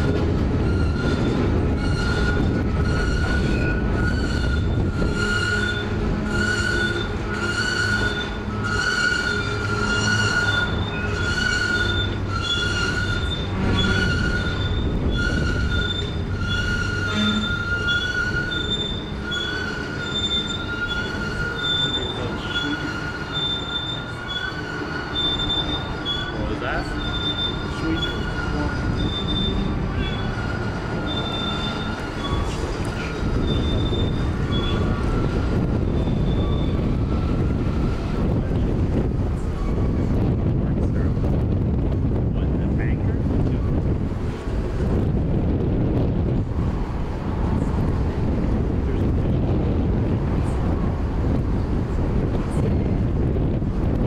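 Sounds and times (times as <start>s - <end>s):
freight train rumble: 0.0s - 54.0s
train wheels squealing: 0.6s - 38.4s.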